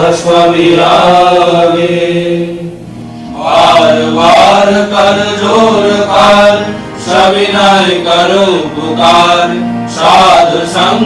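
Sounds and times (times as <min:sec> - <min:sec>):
person chanting a prayer: 0:00.0 - 0:11.0
steady low drone: 0:00.0 - 0:11.0.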